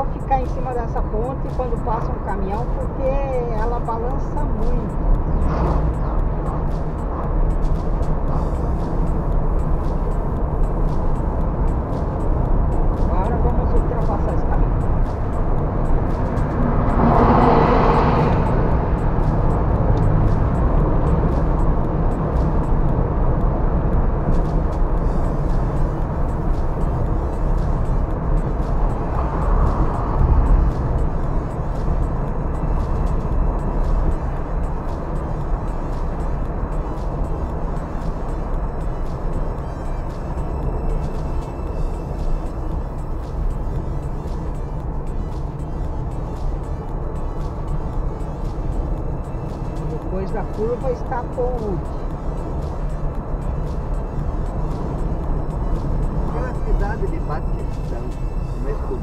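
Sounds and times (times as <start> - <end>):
road and engine rumble in car: 0.0 - 59.0
oncoming truck rushing by: 3.7 - 59.0.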